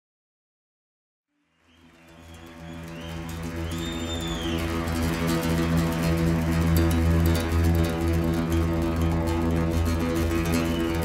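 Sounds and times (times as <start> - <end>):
low steady drone: 2.2 - 11.0
acoustic guitar music: 2.4 - 11.0.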